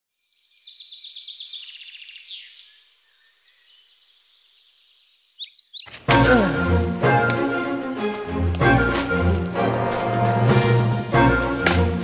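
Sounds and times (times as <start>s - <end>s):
songbirds singing: 0.1s - 6.4s.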